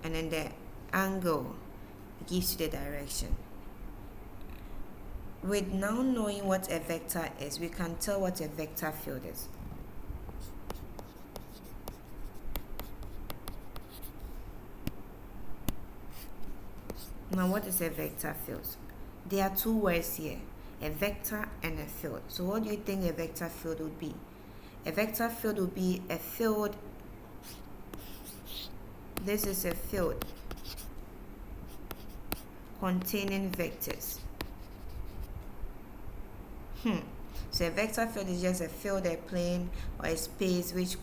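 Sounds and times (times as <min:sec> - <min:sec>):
stylus tapping and scratching: 0:10.3 - 0:15.0, 0:15.6 - 0:17.7, 0:27.4 - 0:31.0, 0:31.6 - 0:35.5.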